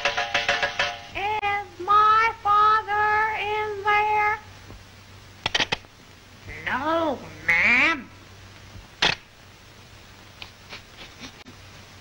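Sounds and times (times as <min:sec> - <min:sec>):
quick clicks: 0:05.4 - 0:05.9.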